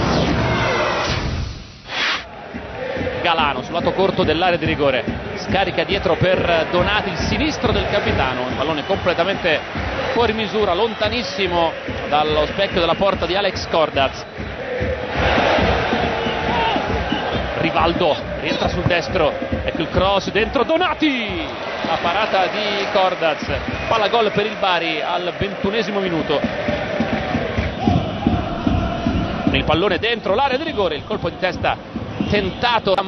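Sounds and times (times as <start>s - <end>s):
stadium crowd noise: 0.0s - 1.1s, 2.2s - 33.0s.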